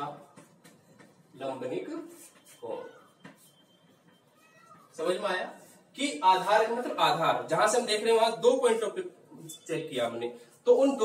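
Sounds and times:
chalk tapping on blackboard: 0:00.0 - 0:01.3, 0:02.1 - 0:05.2
chalk squeaking on blackboard: 0:00.2 - 0:06.6.

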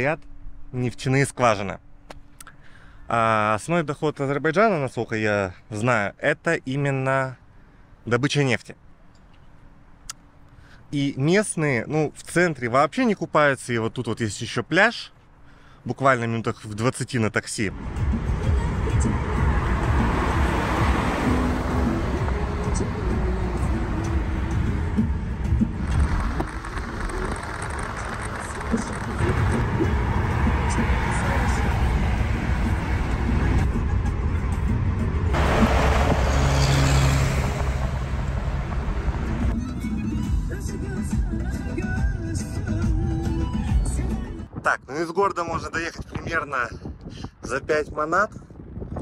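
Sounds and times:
road and wind noise in car: 0:00.0 - 0:49.0
background music: 0:17.7 - 0:36.0, 0:39.2 - 0:44.5.

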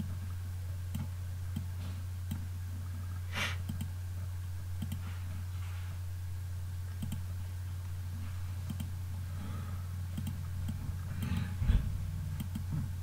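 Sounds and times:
low electrical hum: 0:00.0 - 0:13.0
computer mouse clicks: 0:03.6 - 0:03.9, 0:04.8 - 0:05.1, 0:07.0 - 0:07.2, 0:08.6 - 0:09.0, 0:10.1 - 0:11.5, 0:12.4 - 0:12.8.

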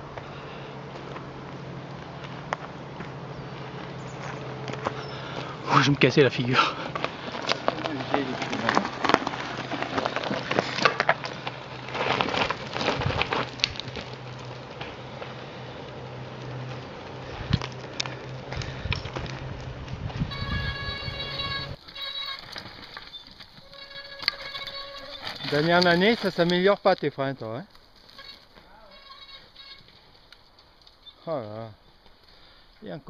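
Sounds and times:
mountain bike rattling: 0:00.0 - 0:32.6
tyres crunching on loose rock: 0:03.8 - 0:31.2
disc brakes squealing: 0:20.1 - 0:26.4, 0:28.0 - 0:30.1.

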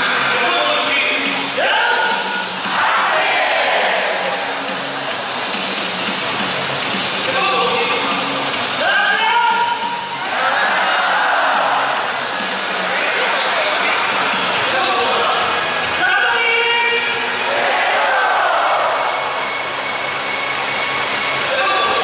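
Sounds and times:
crowd voices: 0:00.0 - 0:22.0
stadium public address music: 0:00.0 - 0:22.0
repeating bass line: 0:17.0 - 0:22.0.

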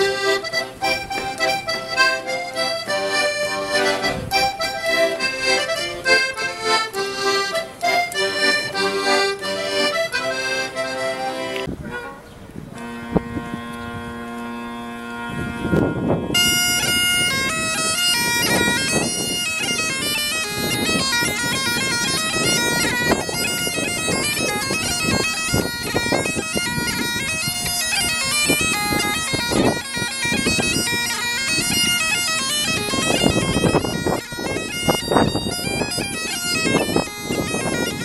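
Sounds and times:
bagpipe chanter melody: 0:00.0 - 0:38.0
bagpipe drones: 0:00.0 - 0:38.0.

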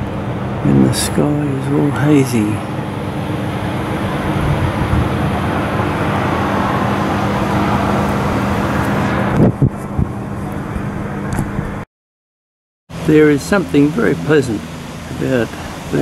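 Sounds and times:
low hum: 0:00.0 - 0:11.8, 0:12.9 - 0:16.0
road traffic noise: 0:00.0 - 0:11.8, 0:12.9 - 0:16.0.

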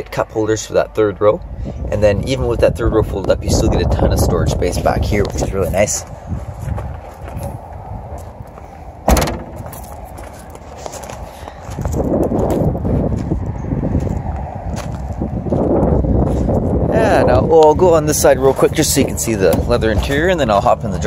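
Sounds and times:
wind on microphone: 0:01.4 - 0:21.0
footsteps on gravel: 0:05.2 - 0:16.8
car liftgate slamming shut: 0:09.0 - 0:10.0.

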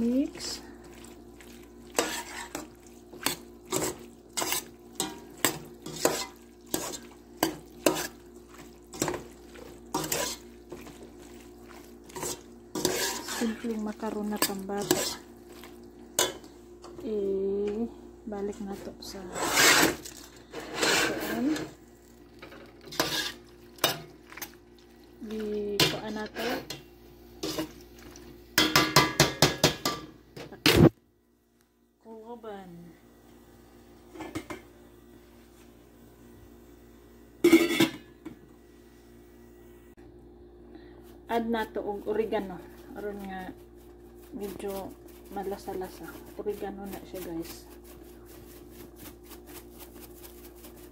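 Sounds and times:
faint steady hum: 0:00.0 - 0:28.9, 0:30.0 - 0:50.9
pot lid clanging: 0:37.5 - 0:38.0.

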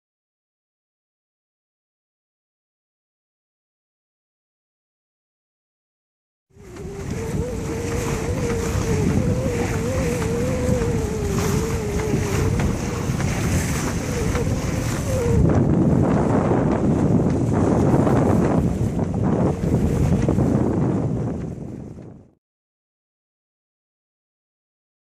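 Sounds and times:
water washing past hull: 0:06.5 - 0:22.4
wind buffeting microphone: 0:06.5 - 0:22.4
wavering tone: 0:06.6 - 0:15.6.

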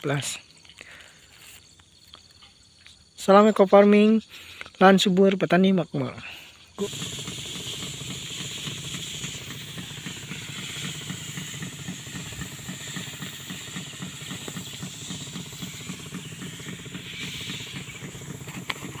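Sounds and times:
constant hiss: 0:00.0 - 0:19.0
small engine throbbing: 0:06.2 - 0:19.0.

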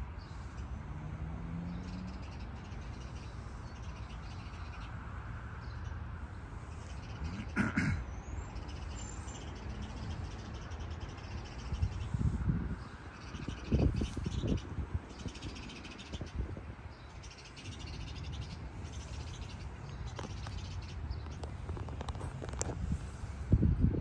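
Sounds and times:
wind rumble on microphone: 0:09.8 - 0:24.0.

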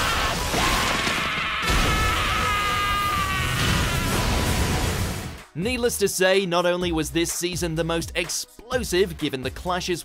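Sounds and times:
music: 0:01.6 - 0:10.0.

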